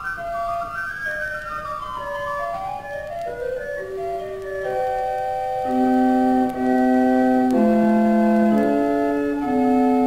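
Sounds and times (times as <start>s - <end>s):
pipe organ playing: 0.0s - 10.0s.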